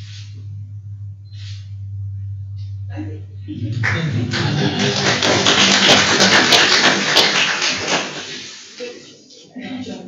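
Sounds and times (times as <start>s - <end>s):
audience applauding: 3.6s - 8.8s.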